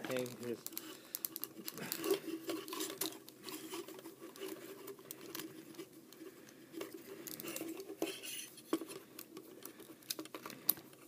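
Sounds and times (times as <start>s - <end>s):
plastic toy parts clicking: 0.0s - 3.7s, 6.8s - 11.0s.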